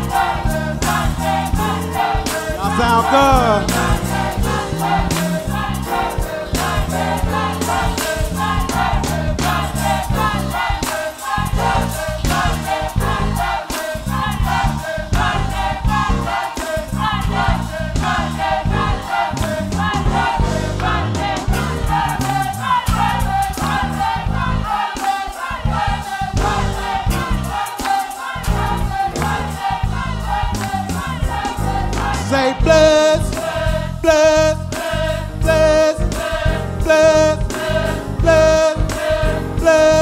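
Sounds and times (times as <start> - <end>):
gospel choir singing: 0.0 - 40.0
rhythmic instrumental accompaniment: 0.0 - 40.0.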